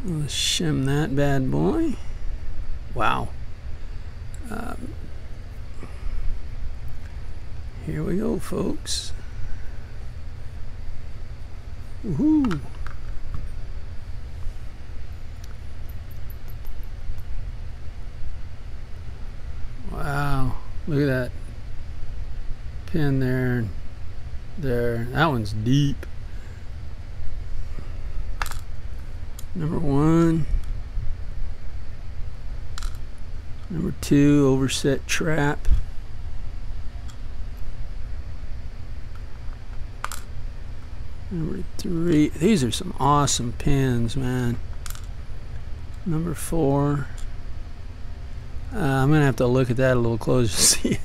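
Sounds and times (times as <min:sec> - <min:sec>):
steady low rumble: 0:00.0 - 0:51.0.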